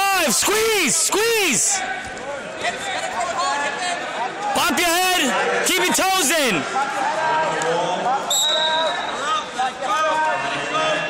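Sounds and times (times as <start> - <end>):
voices calling out in echoing hall: 0.0 - 11.0.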